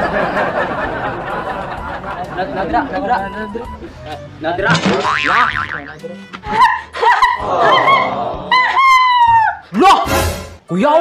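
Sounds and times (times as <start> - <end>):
background music: 0.0 - 11.0
wobbling comic tones: 4.6 - 6.0.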